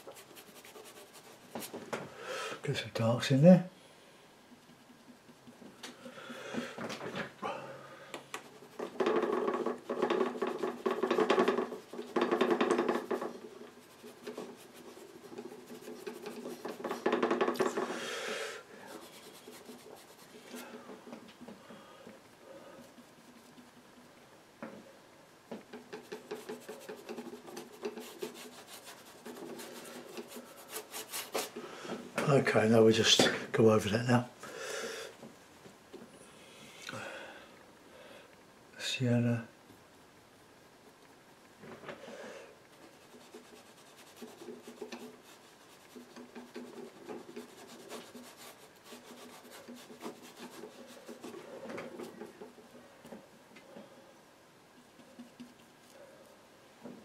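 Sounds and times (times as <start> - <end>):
bristle brush scrubbing paint: 0.0 - 1.8, 8.4 - 18.0, 18.8 - 21.0, 22.8 - 24.1, 25.7 - 31.6, 42.7 - 52.6, 54.8 - 56.0.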